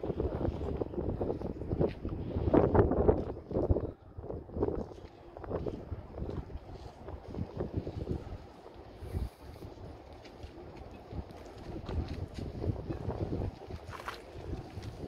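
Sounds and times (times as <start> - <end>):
faint outdoor background noise: 0.0 - 15.0
wind buffeting microphone: 0.0 - 15.0.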